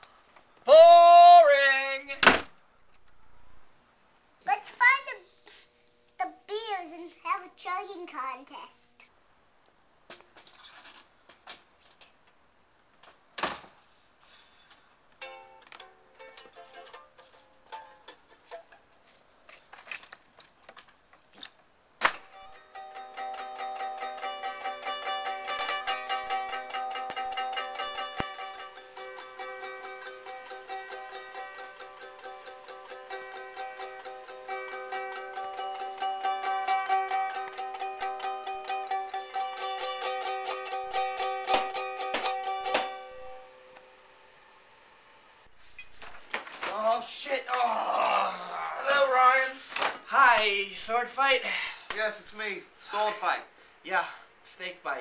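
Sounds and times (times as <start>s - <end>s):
sharp knock: 2.2s - 2.6s
string instrument plucks and clicks: 15.2s - 18.8s, 22.1s - 43.1s
fast strumming on chords: 22.3s - 43.5s.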